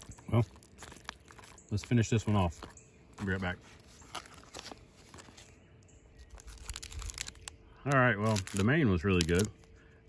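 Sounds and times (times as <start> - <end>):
food wrapper crinkling: 0.0 - 9.8.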